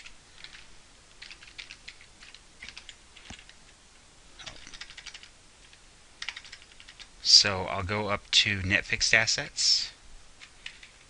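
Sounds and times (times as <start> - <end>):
keyboard keys clicking: 0.0 - 0.6, 1.2 - 3.6, 4.5 - 5.3, 6.2 - 7.1.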